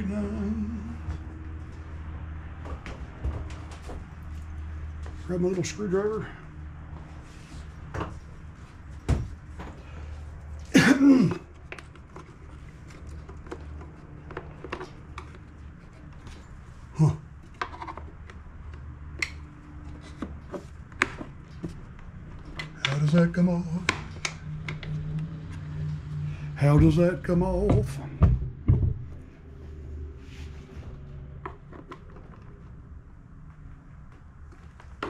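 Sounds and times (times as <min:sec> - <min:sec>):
person muttering: 0:17.0 - 0:17.3.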